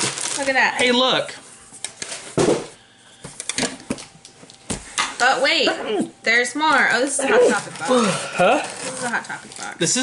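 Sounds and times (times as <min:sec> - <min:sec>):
packaging rustling: 0:00.0 - 0:01.1, 0:07.5 - 0:10.0.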